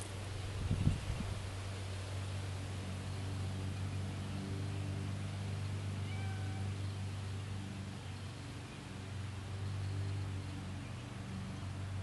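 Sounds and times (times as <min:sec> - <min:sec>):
faint animal call: 0:06.0 - 0:06.8.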